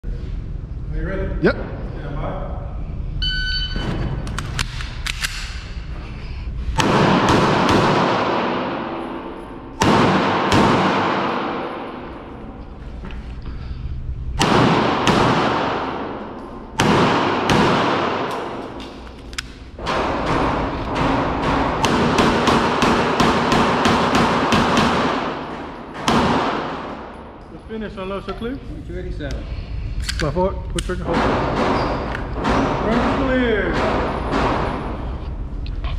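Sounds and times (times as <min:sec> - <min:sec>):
pistol shots echoing indoors: 0:06.8 - 0:12.6, 0:14.4 - 0:27.5, 0:30.1 - 0:35.2.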